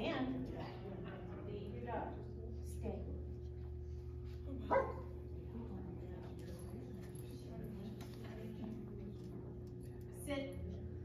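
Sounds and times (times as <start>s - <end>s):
steady low hum: 0.0s - 11.0s
dog barking: 4.7s - 5.2s.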